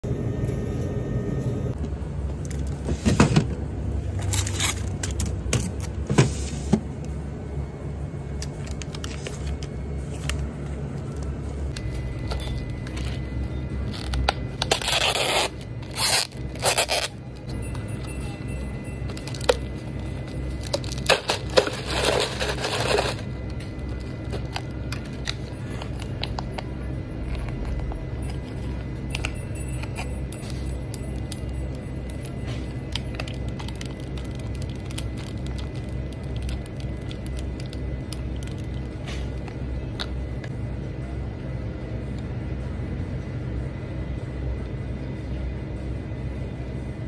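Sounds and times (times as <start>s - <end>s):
refrigerator cases humming: 0.0s - 47.0s.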